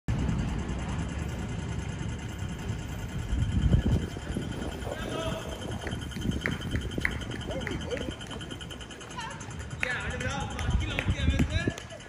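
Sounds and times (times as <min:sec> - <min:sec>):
low street rumble: 0:00.1 - 0:12.0
people's voices: 0:03.8 - 0:12.0.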